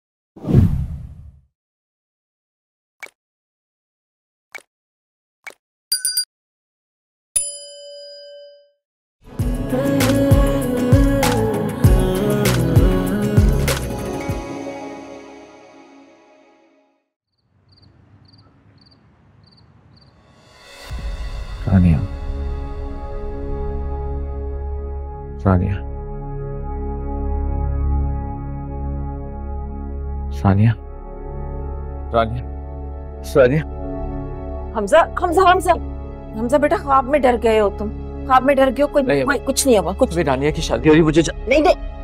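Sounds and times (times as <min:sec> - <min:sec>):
crickets chirping: 0:17.3 - 0:20.6.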